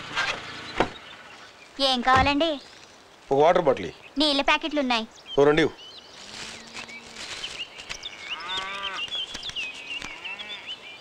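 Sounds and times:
high bird chirps: 4.9s - 11.0s
cattle mooing: 8.1s - 9.0s, 10.1s - 10.7s.

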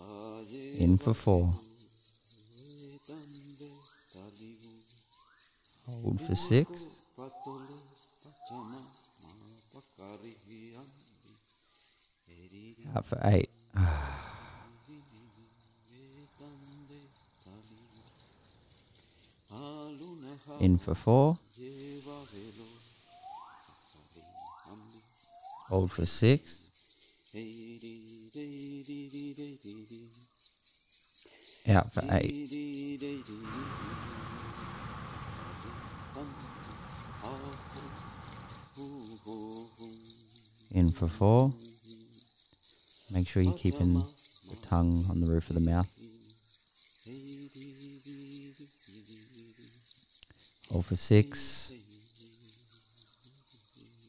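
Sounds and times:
steady hiss: 0.0s - 54.0s
low wavering voice-like tones: 5.9s - 7.8s, 31.7s - 39.9s
long breath blown out: 13.8s - 15.2s, 33.2s - 38.8s.

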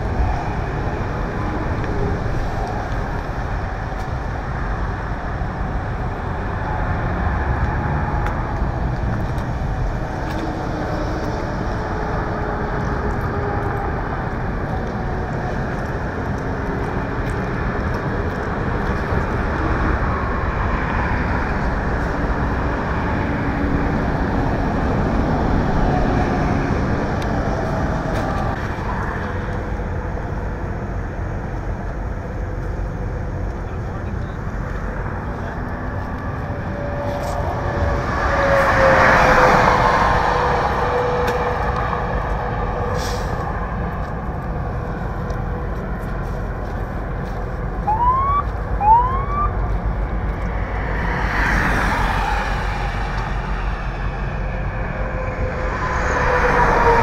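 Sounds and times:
traffic noise: 0.0s - 57.0s
siren chirps: 47.8s - 49.7s.

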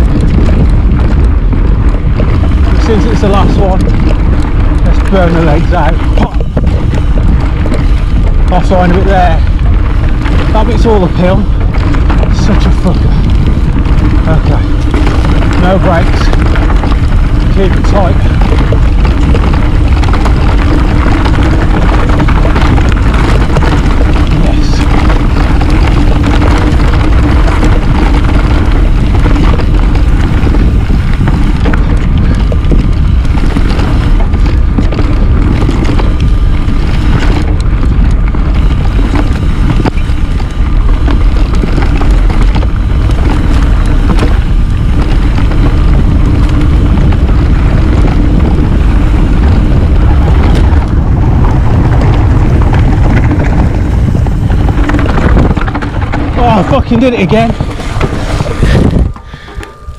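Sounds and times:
bike tyres rumbling over dirt: 0.0s - 59.9s
wind buffeting microphone: 0.0s - 59.9s.

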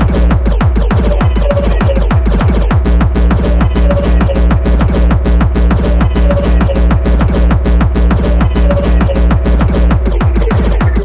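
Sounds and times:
falling bass hits: 0.0s - 11.0s
hard techno kick drums: 0.0s - 11.0s
steady low hum: 0.0s - 11.0s.

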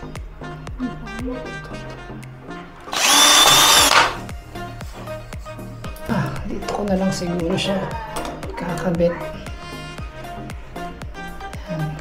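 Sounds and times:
cordless drill whining: 2.9s - 4.2s.

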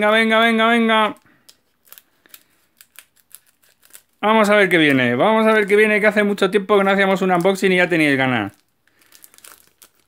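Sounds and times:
scissors snipping wrapper: 1.4s - 4.2s, 7.4s - 10.0s.

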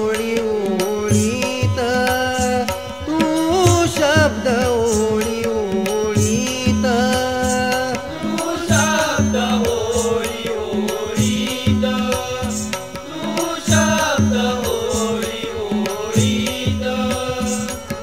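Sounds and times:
hand drum rhythm: 0.1s - 18.0s
wavering melodic instrument: 0.8s - 18.0s.

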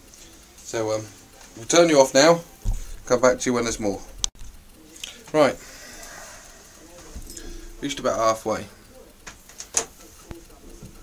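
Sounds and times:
man speaking: 0.8s - 4.2s, 4.8s - 5.7s, 6.7s - 9.2s.

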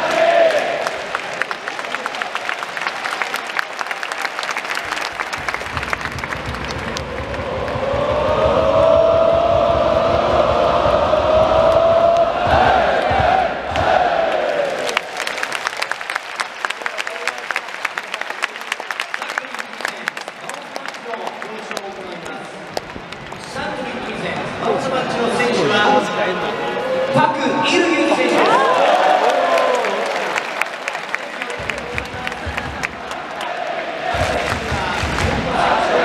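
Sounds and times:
crowd chanting: 0.0s - 1.2s, 6.6s - 15.0s, 28.0s - 30.4s, 32.4s - 36.0s
crowd clapping: 0.0s - 8.8s, 13.0s - 24.4s, 28.2s - 36.0s.

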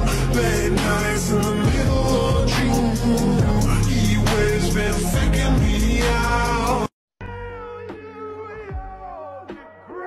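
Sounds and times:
pop song playing: 0.0s - 10.0s.

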